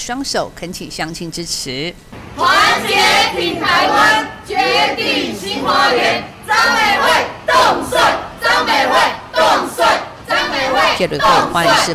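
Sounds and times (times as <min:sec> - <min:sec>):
crowd shouting a chant: 0:02.4 - 0:11.9.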